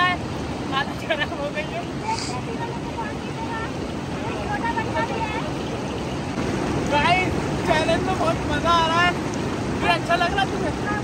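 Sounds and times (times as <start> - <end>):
river rushing over rocks: 0.0 - 11.0.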